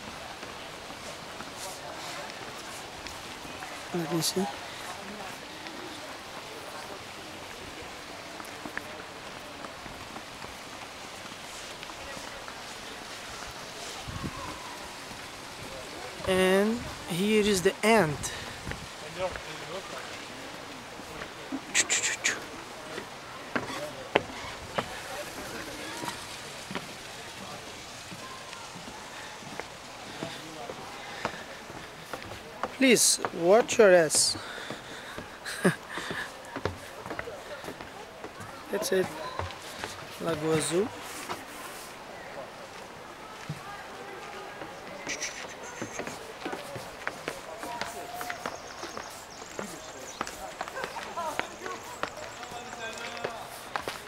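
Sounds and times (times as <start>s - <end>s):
people talking faintly: 0.0s - 17.1s, 34.4s - 54.0s
faint distant voices: 0.0s - 54.0s
footsteps on wooden boards: 8.3s - 13.9s, 18.4s - 19.5s, 22.9s - 27.1s, 28.1s - 42.0s, 42.7s - 54.0s
footsteps on gravel: 44.3s - 54.0s.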